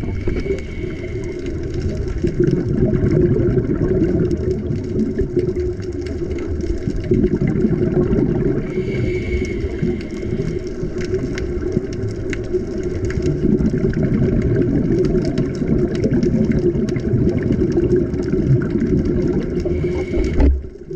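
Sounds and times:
underwater low drone: 0:00.0 - 0:20.9.

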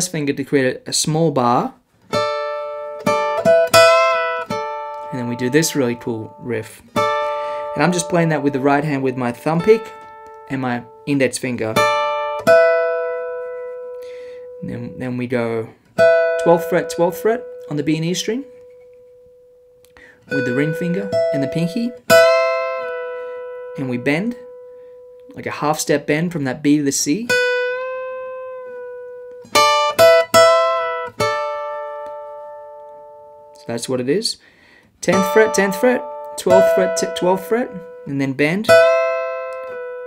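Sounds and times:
acoustic guitar notes plucked: 0:01.3 - 0:40.0.

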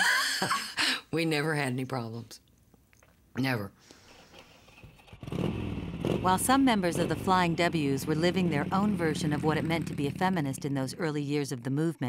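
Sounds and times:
motorcycle engine running: 0:04.9 - 0:11.0.

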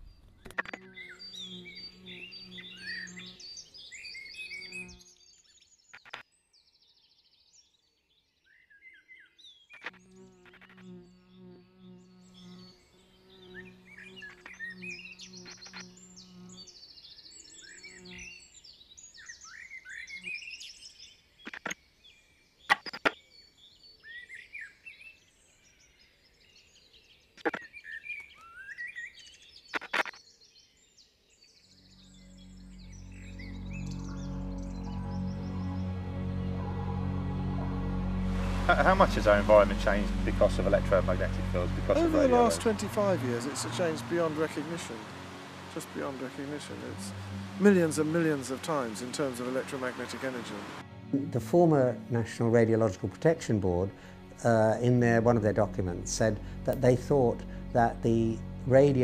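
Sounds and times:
birds chirping and whistling: 0:00.0 - 0:06.0, 0:13.4 - 0:21.2, 0:27.6 - 0:30.9, 0:31.6 - 0:36.7
low musical drone: 0:31.8 - 0:59.0
music: 0:31.9 - 0:59.0.

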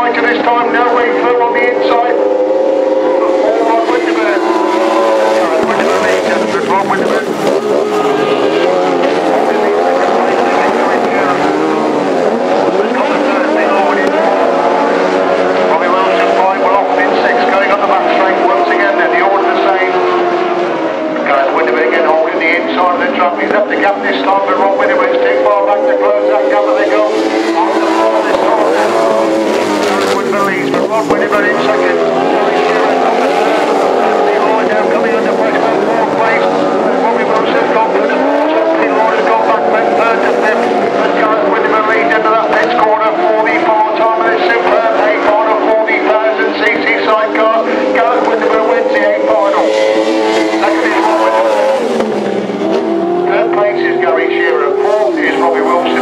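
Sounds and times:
racing sidecar engines revving: 0:00.0 - 0:56.0.

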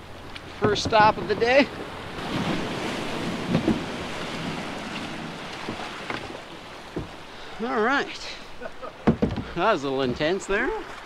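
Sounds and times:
small waves washing over sand: 0:00.0 - 0:08.1
faint knocks: 0:06.9 - 0:07.2, 0:09.0 - 0:09.6.

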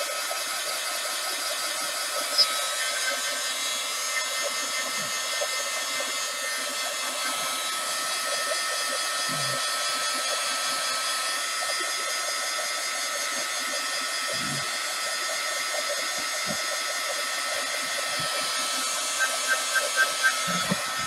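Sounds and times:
heat gun blowing hot air: 0:00.0 - 0:21.0.

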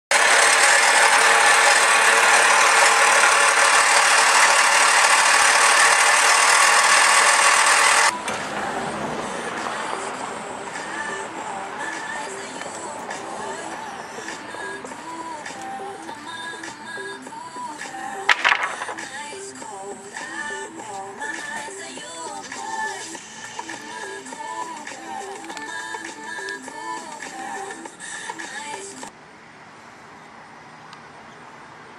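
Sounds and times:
power equipment running: 0:00.1 - 0:10.0
background music with melody: 0:08.1 - 0:29.1
wooden board knocking on concrete: 0:18.3 - 0:19.0.

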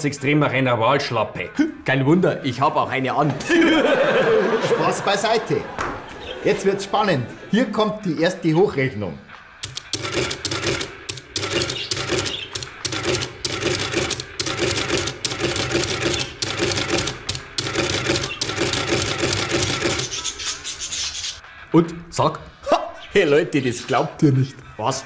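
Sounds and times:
rapid mechanical clattering: 0:09.6 - 0:20.3.

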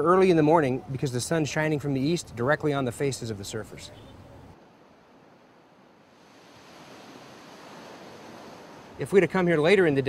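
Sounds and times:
ocean surf waves: 0:04.6 - 0:09.8.

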